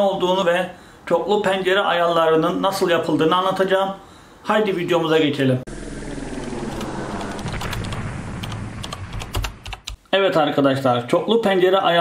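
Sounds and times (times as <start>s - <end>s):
crackling hiss: 5.8s - 10.2s
sharp clicks: 6.4s - 10.0s.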